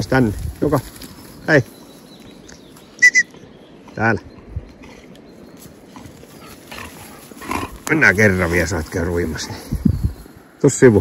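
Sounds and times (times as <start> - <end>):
dog moving through long grass: 0.0 - 2.9, 5.3 - 11.0.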